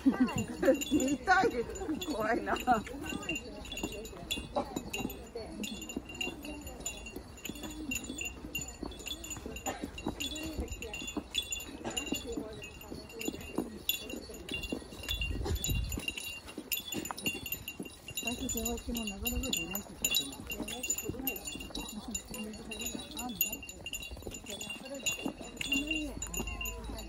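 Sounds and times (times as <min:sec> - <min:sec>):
faint voices talking: 0:00.0 - 0:27.0
small metal bell jingling: 0:00.0 - 0:27.0.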